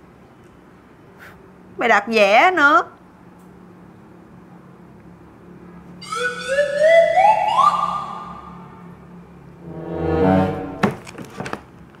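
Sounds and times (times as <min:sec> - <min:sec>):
rising electronic whistle tone: 0:06.0 - 0:08.6.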